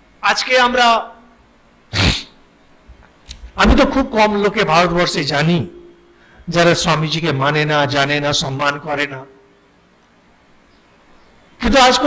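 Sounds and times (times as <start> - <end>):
man's breathy vocal burst: 1.9 - 2.4
man talking: 3.6 - 5.8, 6.5 - 9.3, 11.6 - 12.0.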